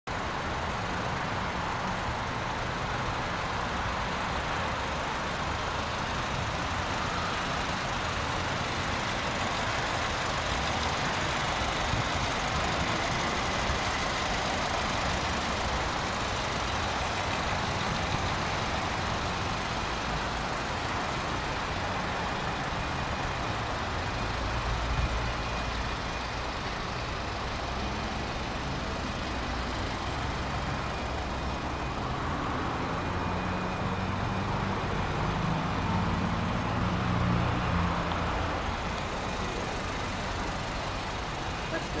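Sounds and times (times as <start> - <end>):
motor vehicle noise: 0.0 - 42.0.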